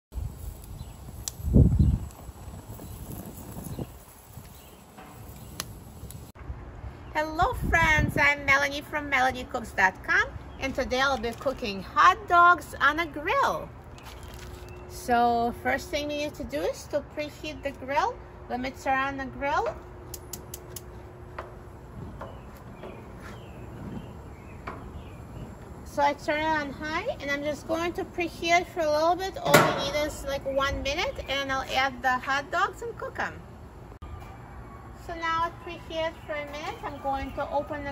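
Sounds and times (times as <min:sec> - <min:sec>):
gas burner flames rumbling: 0:00.1 - 0:06.4, 0:07.4 - 0:37.9
spark igniter clicking: 0:00.5 - 0:03.8, 0:04.5 - 0:06.3, 0:20.1 - 0:20.9
birds chirping: 0:10.2 - 0:16.2, 0:20.0 - 0:37.9.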